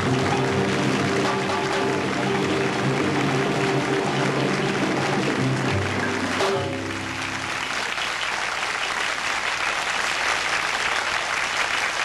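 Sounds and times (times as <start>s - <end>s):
latin jazz band playing live: 0.0s - 7.7s
held instrument notes: 0.0s - 7.8s.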